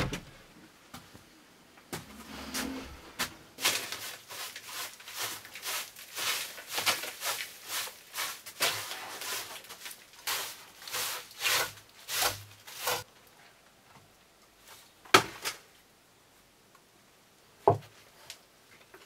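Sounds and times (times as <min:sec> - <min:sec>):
brush sweeping wooden boards: 0:02.2 - 0:13.0.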